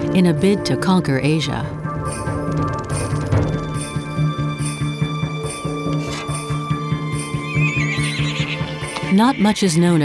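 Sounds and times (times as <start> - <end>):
soundtrack music with pulsing beat: 1.6 - 9.7
horse whinnying: 7.2 - 9.8.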